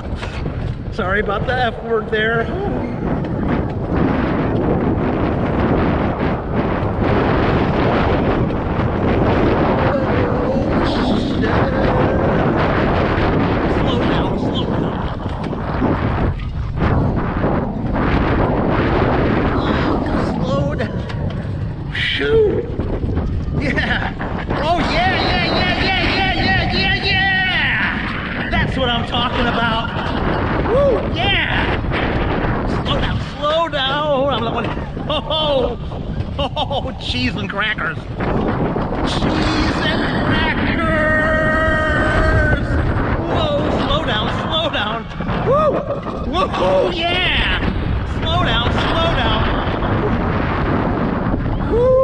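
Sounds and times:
coaster sled rumbling on metal rail: 0.0s - 52.0s
wind rushing on microphone: 0.0s - 52.0s.

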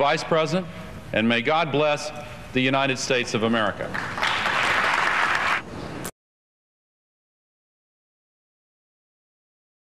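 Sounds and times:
applause: 3.8s - 5.7s.

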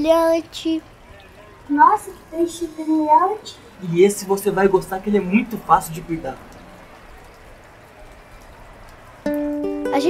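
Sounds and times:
low steady water and air hiss: 0.0s - 10.0s.

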